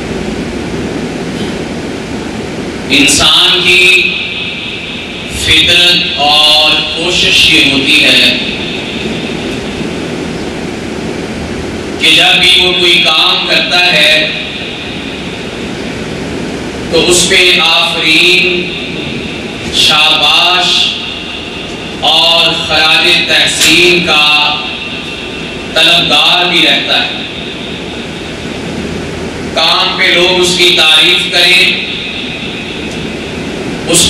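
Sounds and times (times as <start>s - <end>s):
steady rushing noise: 0.0s - 34.0s
man speaking: 2.9s - 4.3s, 5.3s - 8.6s, 12.0s - 14.6s, 16.9s - 21.1s, 22.0s - 24.8s, 25.7s - 27.3s, 29.6s - 32.1s.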